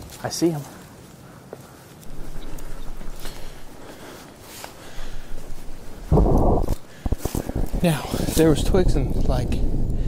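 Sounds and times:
low muffled boom: 0:06.1 - 0:07.8.

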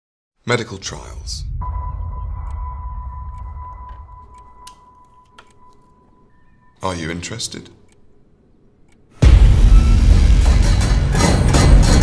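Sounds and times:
deep low rumble: 0:01.0 - 0:04.7
steady high-pitched tone: 0:01.4 - 0:06.8.

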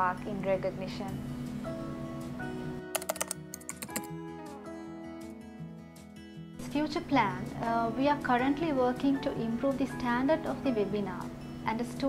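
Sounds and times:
background music: 0:00.0 - 0:12.0
computer keyboard typing clicks: 0:03.0 - 0:04.1.

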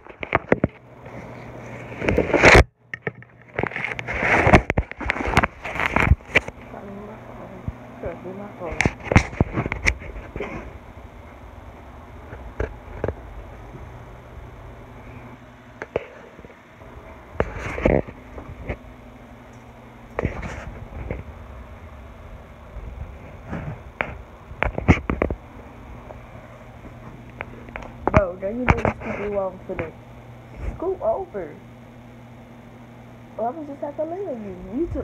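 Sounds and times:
phone handling and rustling: 0:00.0 - 0:06.6, 0:08.8 - 0:10.7, 0:17.3 - 0:18.9, 0:23.3 - 0:26.2
steady low hum: 0:00.0 - 0:35.0.

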